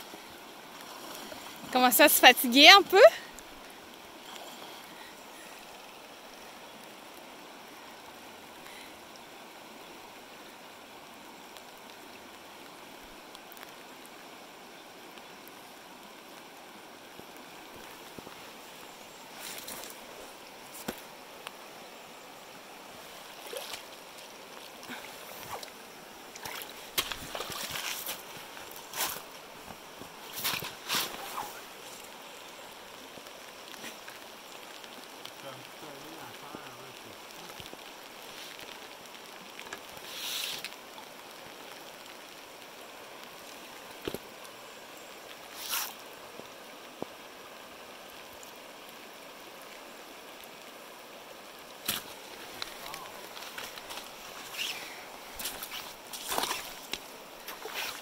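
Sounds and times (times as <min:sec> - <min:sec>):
river running over rocks: 0:00.0 - 0:58.0.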